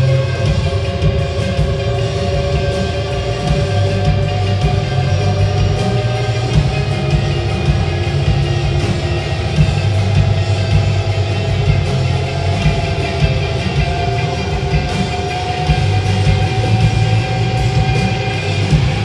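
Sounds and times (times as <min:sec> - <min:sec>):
band playing live: 0:00.0 - 0:19.0.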